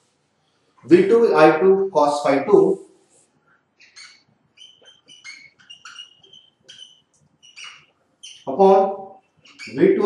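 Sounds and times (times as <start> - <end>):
marker squeaking on whiteboard: 2.8 - 10.0.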